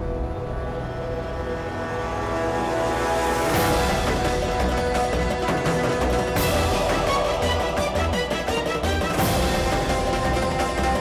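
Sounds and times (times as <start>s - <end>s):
low rumble: 0.0s - 5.6s
droning chord: 0.0s - 11.0s.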